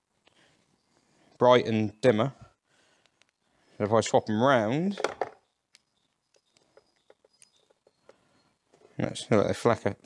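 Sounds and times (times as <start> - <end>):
plastic bulb holders clicking: 5.0 - 8.2.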